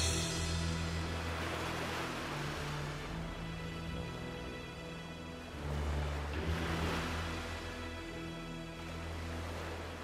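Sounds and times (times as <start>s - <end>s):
ocean waves washing: 0.0s - 10.0s.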